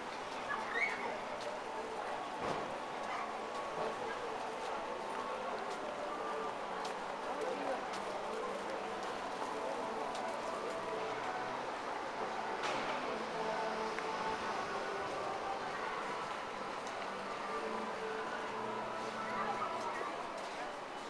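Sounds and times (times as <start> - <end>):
steady urban hum: 0.0 - 21.0
indistinct voices: 0.3 - 21.0.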